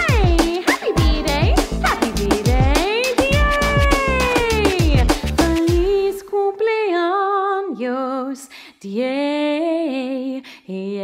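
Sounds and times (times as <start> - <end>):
sliding pitched lead voice: 0.0 - 5.0
steady drum beat: 0.0 - 6.0
upbeat electronic birthday song: 0.0 - 6.0.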